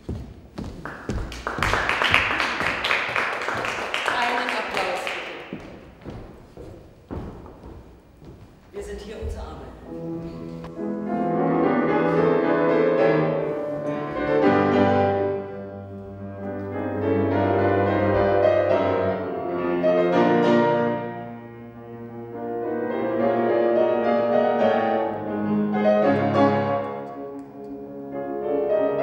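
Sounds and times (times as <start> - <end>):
classical piano music: 5.1 - 29.0.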